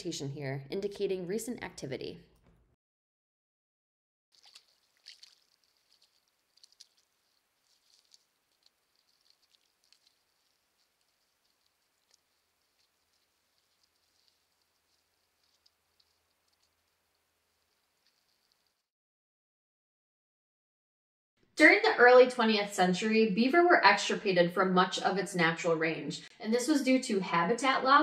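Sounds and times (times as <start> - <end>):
faint low hum: 4.4 - 18.9
soft ticks and crackles: 4.4 - 18.9.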